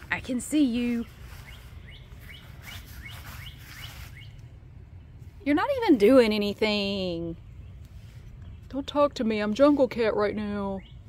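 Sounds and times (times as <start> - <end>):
small bird chirping: 0.8 - 4.6.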